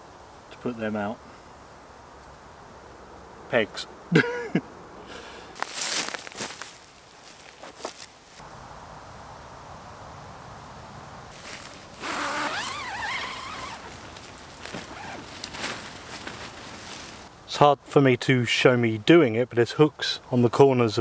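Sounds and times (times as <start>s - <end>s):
tent zip being run: 5.6s - 8.4s, 11.3s - 17.3s.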